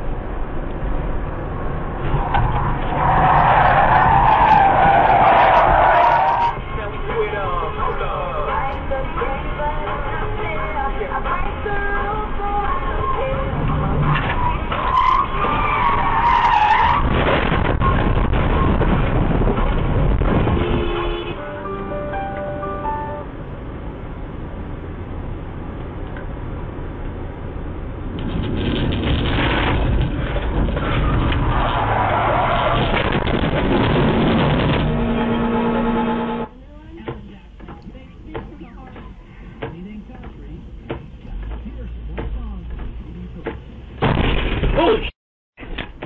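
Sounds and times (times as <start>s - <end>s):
road noise: 0.0s - 46.0s
tyres squealing: 2.2s - 6.6s.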